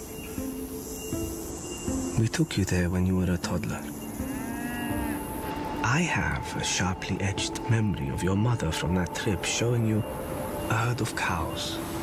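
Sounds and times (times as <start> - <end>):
cow mooing: 4.3 - 5.3.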